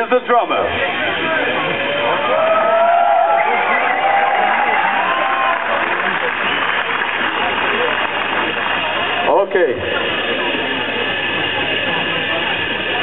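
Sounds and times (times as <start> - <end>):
crowd cheering and shouting: 0.7 - 9.4
long held yells: 2.2 - 5.7.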